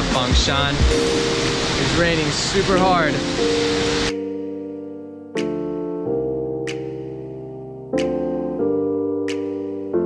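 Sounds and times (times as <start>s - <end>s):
soft keyboard music: 0.0s - 10.0s
heavy rain hissing: 0.1s - 4.3s.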